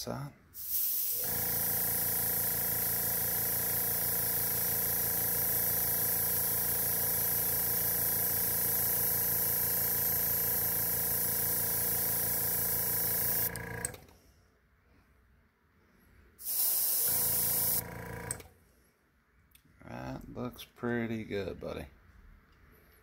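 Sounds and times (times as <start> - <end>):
airbrush spraying hiss: 0.6 - 13.5, 16.4 - 17.8.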